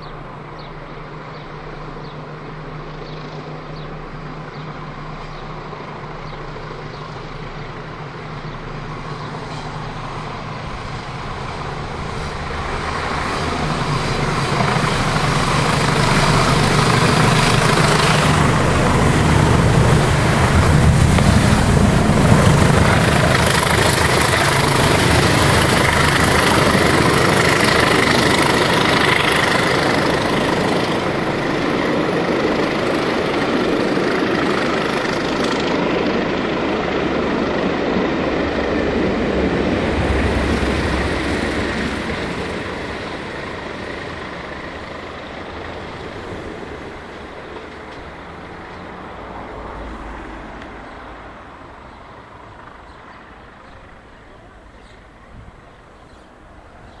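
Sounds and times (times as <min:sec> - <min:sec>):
diesel locomotive engine drone: 0:00.0 - 0:57.0.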